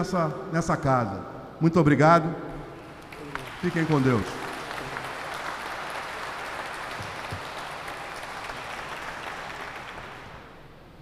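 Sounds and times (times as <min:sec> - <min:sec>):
audience applauding: 0:02.7 - 0:10.6.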